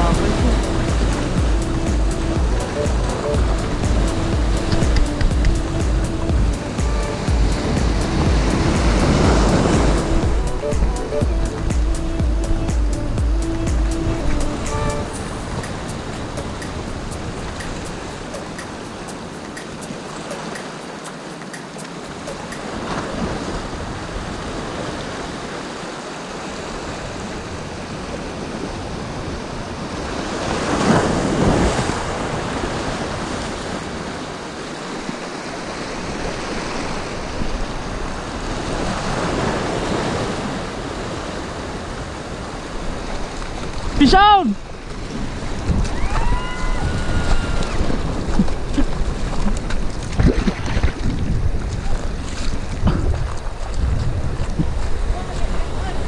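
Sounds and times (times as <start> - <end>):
sea waves washing over rocks: 0.0 - 56.0.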